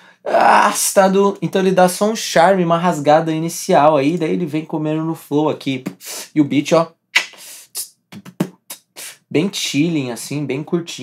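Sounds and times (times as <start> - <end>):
trap beat: 7.2 - 9.0.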